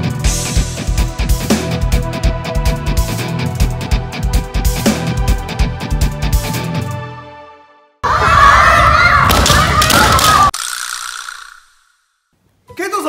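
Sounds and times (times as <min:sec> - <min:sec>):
music: 0:00.0 - 0:08.0, 0:12.6 - 0:13.0
crowd shouting: 0:08.0 - 0:10.5.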